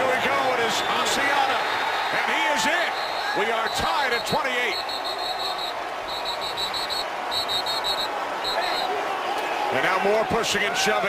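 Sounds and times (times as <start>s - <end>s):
stadium crowd noise: 0.0s - 11.0s
referee's whistle short blasts: 2.9s - 8.9s.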